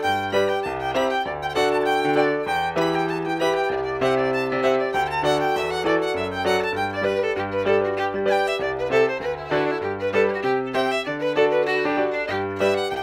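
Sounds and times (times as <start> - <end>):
solo fiddle playing: 0.0 - 13.0.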